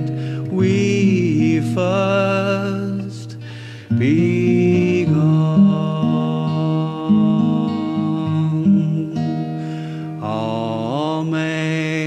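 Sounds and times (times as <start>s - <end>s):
acoustic guitar: 0.0s - 12.0s
man singing slow notes: 0.0s - 12.0s.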